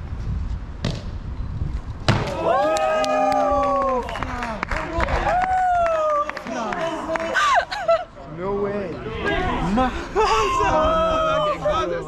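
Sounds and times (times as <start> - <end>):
hard thud of landing on concrete: 2.0 - 2.4.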